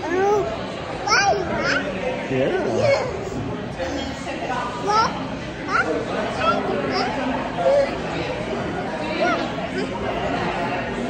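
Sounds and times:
toddler vocalising: 0:00.0 - 0:08.1, 0:09.2 - 0:10.0.

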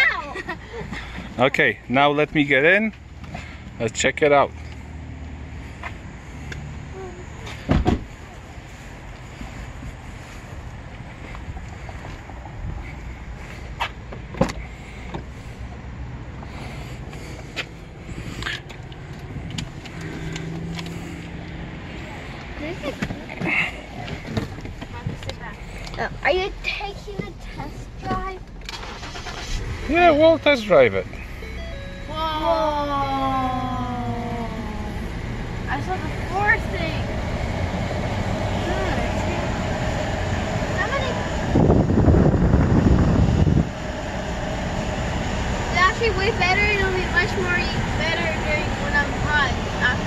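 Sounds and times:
low cabin hum: 0:23.9 - 0:35.1.

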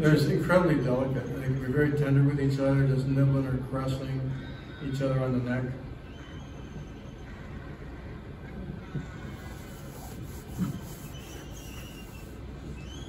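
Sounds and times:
low rumble of hall room noise: 0:00.0 - 0:13.0.

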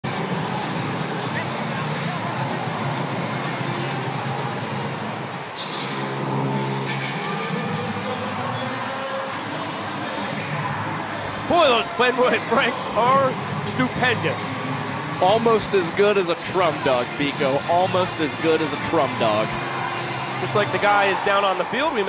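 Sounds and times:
crowd voices din: 0:00.0 - 0:22.0.

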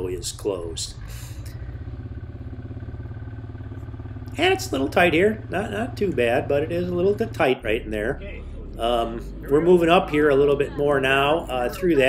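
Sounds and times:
diesel engine throbbing: 0:00.0 - 0:12.0.

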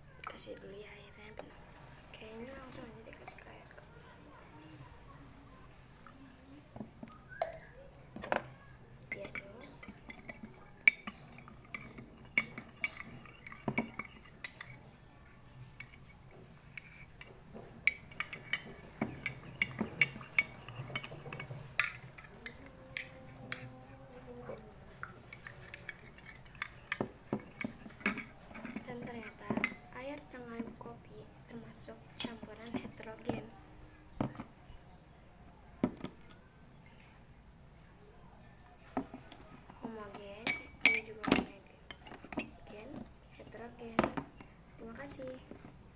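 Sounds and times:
metal spoon clinking in glass: 0:17.8 - 0:23.7, 0:40.4 - 0:42.6.

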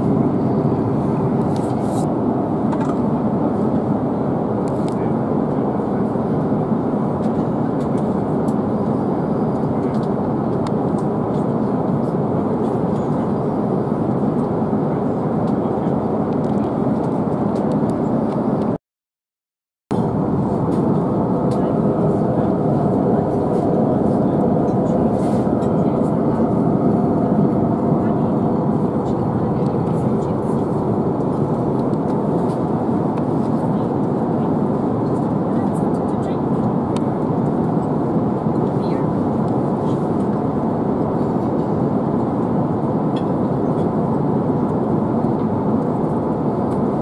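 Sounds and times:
aircraft cabin rumble: 0:00.0 - 0:18.8, 0:19.9 - 0:47.0.

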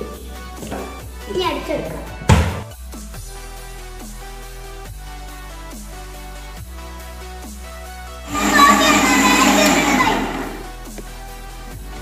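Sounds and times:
background music: 0:00.0 - 0:10.8
mixer grinder blending: 0:08.3 - 0:10.7.

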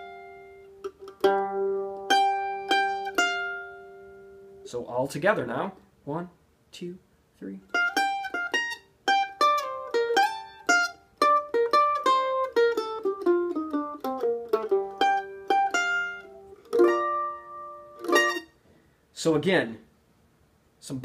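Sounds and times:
mandolin picking jazz notes: 0:00.0 - 0:05.4, 0:07.6 - 0:18.6.

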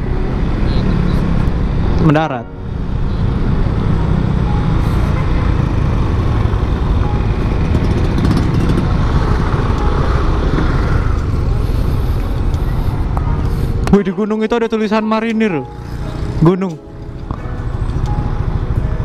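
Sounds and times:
road noise: 0:00.0 - 0:19.0
scooter engine: 0:02.7 - 0:13.8, 0:15.6 - 0:19.0.

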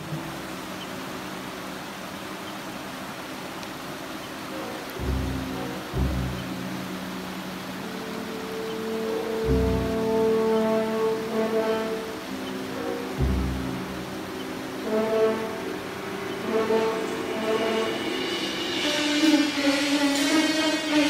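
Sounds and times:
river water over rocks: 0:00.0 - 0:21.0
slow instrumental music: 0:03.2 - 0:21.0.

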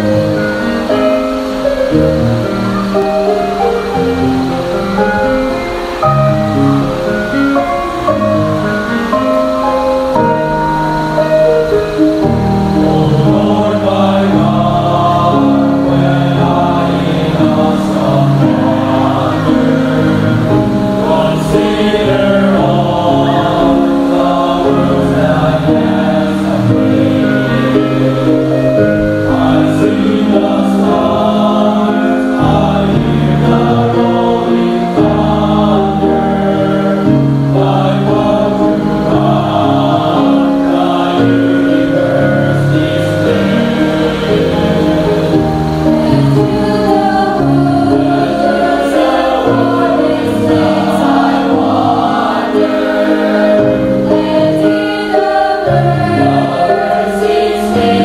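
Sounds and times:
choir singing a hymn: 0:00.0 - 0:58.0.

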